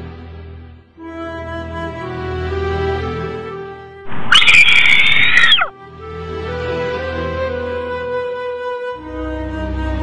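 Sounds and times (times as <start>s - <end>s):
loud shrill scream: 4.1s - 5.7s.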